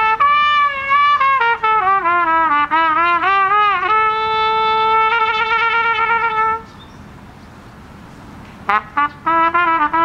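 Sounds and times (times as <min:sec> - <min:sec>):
trumpet note with vibrato: 0:00.0 - 0:06.7, 0:08.7 - 0:10.0
faint outdoor background noise: 0:00.0 - 0:10.0.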